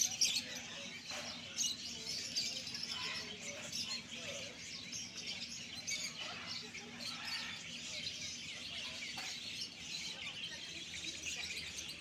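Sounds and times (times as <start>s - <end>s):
small birds chirping: 0.0s - 12.0s.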